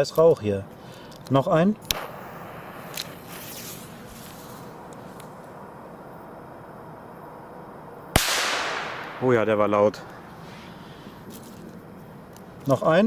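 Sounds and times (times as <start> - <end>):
firecracker fuse hissing: 1.8 - 5.6.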